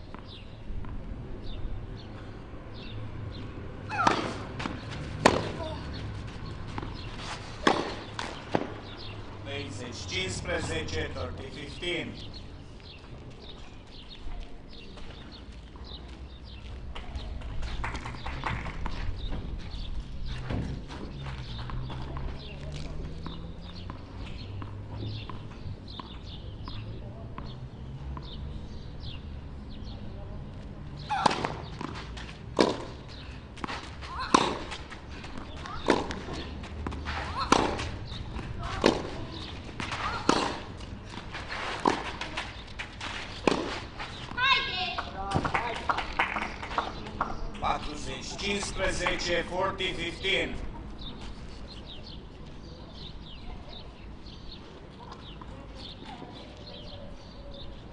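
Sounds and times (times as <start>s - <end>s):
low background murmur: 0.3s - 57.9s
tennis racket hitting ball: 3.9s - 9.0s, 31.1s - 44.4s.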